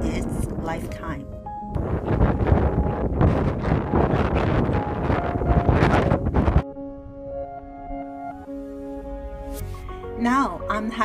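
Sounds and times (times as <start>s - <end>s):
strong wind on microphone: 0.0s - 7.4s.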